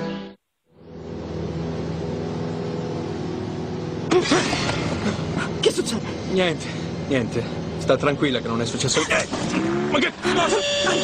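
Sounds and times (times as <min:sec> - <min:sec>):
airliner engines droning in cabin: 0:00.8 - 0:08.3.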